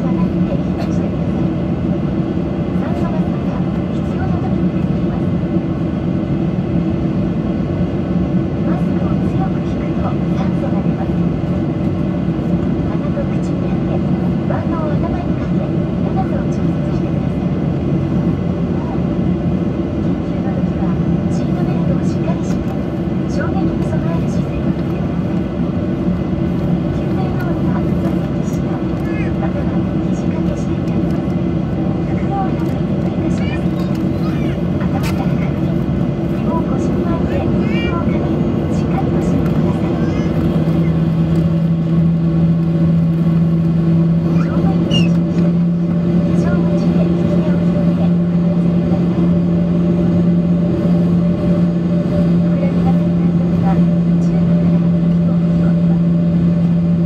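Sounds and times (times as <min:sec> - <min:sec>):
jet engines humming from cabin: 0:00.0 - 0:57.0.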